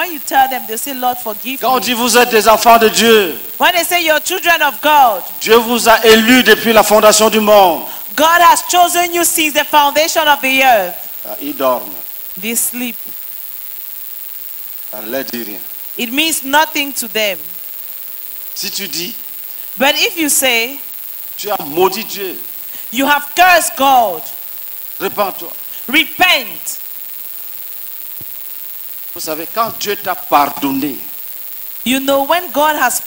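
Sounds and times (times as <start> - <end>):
faint low hum: 0.0 - 33.0
steady hiss: 0.0 - 33.0.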